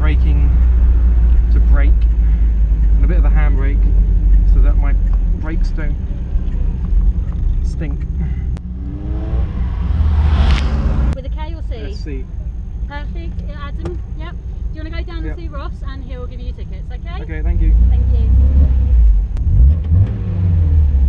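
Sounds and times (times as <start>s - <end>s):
car engine rumble: 0.0s - 21.0s
road noise: 0.0s - 21.0s.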